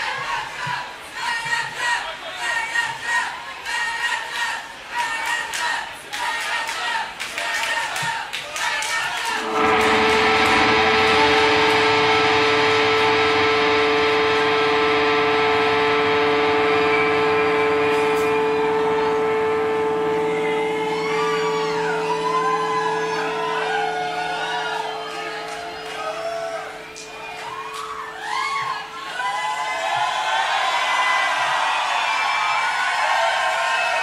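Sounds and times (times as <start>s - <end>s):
crowd whooping and cheering: 8.8s - 34.0s
electric bass note: 9.4s - 29.0s.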